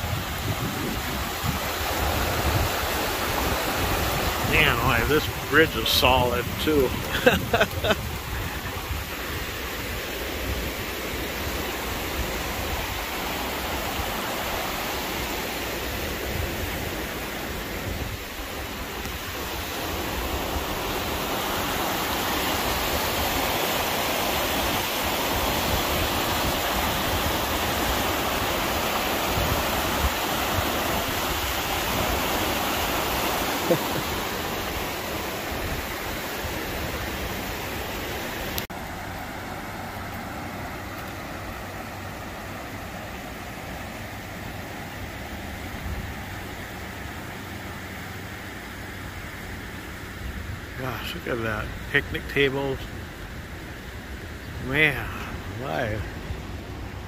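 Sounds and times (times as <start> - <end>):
river water rushing over rapids: 0.0 - 51.9, 52.9 - 57.0.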